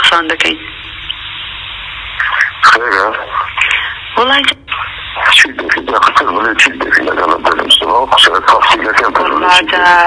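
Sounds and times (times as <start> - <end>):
person talking over radio: 2.2 - 10.0.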